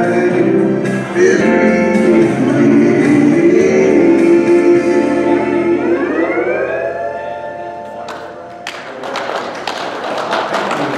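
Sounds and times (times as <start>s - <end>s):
backing track chord: 0.0s - 8.7s
people clapping: 7.9s - 10.9s.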